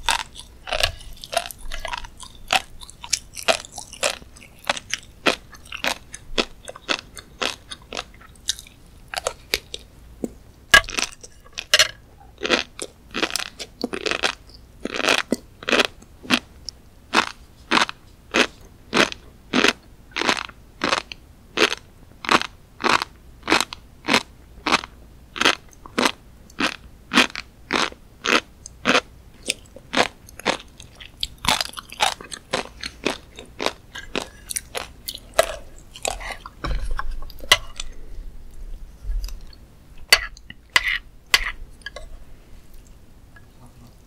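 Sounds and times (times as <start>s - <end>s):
fish roe crunching while chewed: 0.0s - 16.5s, 17.1s - 43.0s.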